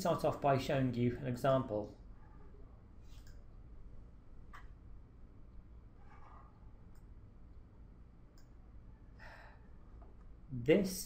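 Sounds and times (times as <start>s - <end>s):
faint breath: 9.0s - 10.0s.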